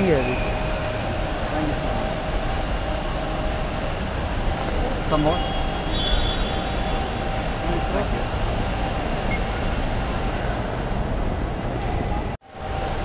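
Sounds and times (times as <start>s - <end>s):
low rumble and hiss: 0.0s - 13.0s.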